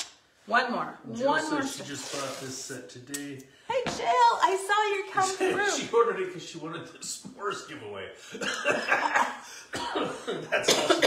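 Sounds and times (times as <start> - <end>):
person coughing: 8.4 - 11.0.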